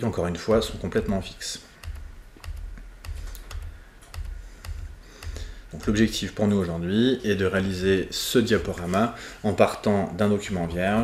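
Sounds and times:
keyboard key clicks: 1.8s - 6.0s.

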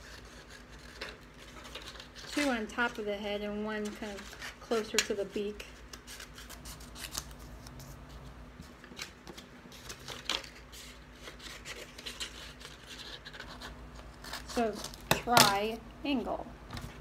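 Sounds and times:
scissors cutting paper: 0.0s - 2.9s, 8.9s - 15.6s
paper rustling: 0.0s - 3.0s, 3.7s - 15.0s.

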